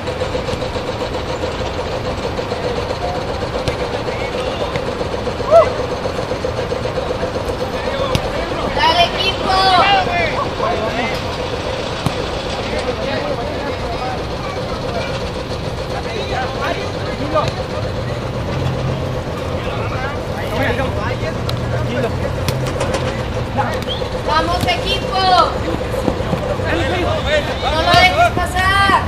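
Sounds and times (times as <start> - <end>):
steady background noise: 0.0 - 29.0
players shouting: 0.3 - 29.0.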